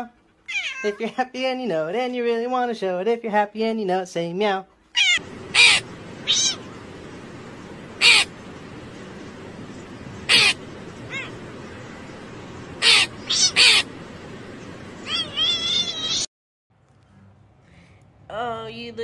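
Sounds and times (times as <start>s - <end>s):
cat meowing: 0.5s - 1.0s, 4.9s - 6.7s, 10.3s - 11.4s, 12.8s - 13.9s, 15.0s - 16.3s
crow cawing: 5.2s - 6.8s, 7.9s - 8.4s, 10.2s - 11.4s, 12.8s - 14.0s
steady hiss: 5.2s - 16.3s.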